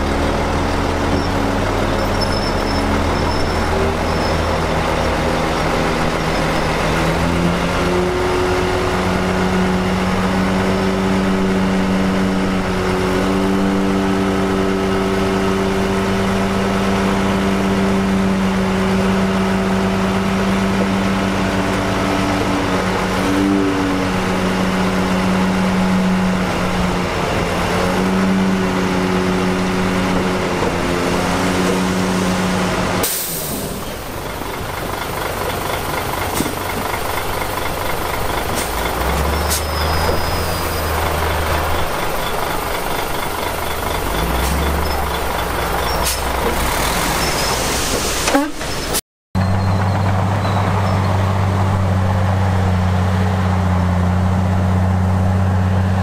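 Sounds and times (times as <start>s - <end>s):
dump truck diesel engine: 0.0s - 56.0s.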